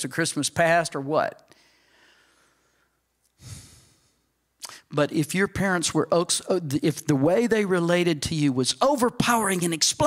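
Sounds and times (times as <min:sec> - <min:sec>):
man sighing into microphone: 0:03.4 - 0:04.8.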